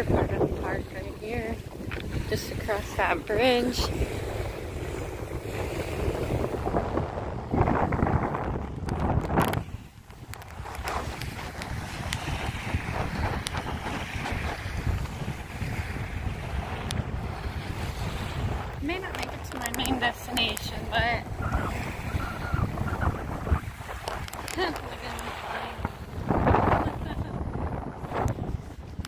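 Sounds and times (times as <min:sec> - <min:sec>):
small waves washing onto shore: 0:00.0 - 0:29.0
wind buffeting microphone: 0:00.0 - 0:29.0.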